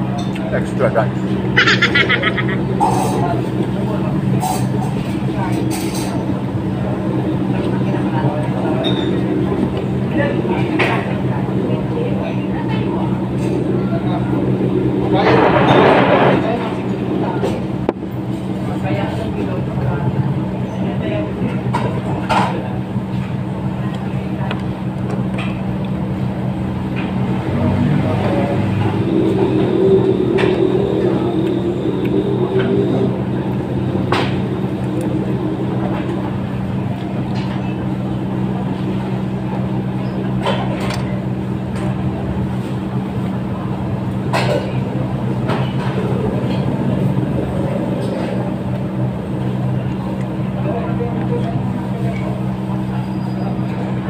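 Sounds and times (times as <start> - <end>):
faint voices: 0.0 - 54.0
low mechanical hum: 0.0 - 54.0.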